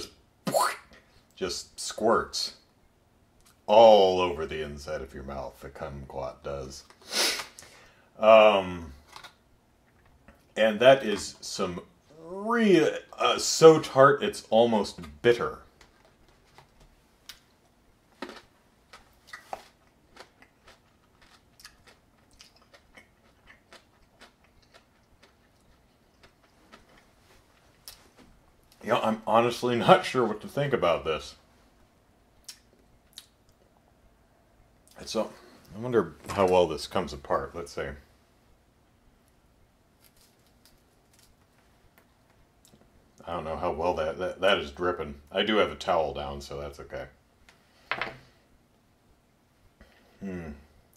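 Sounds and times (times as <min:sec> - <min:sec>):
person chewing: 0:18.2 - 0:28.1.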